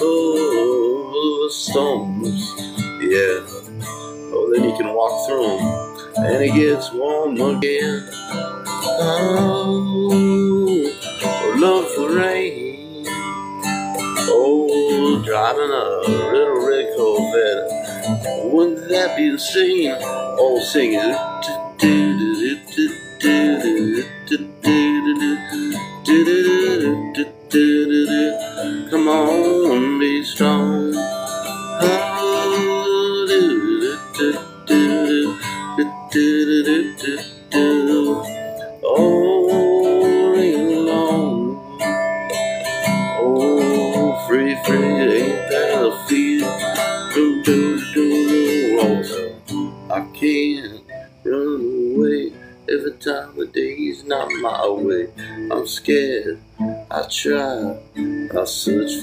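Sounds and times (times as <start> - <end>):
acoustic guitar strummed: 0.0 - 59.0
man singing wordless notes: 0.0 - 59.0.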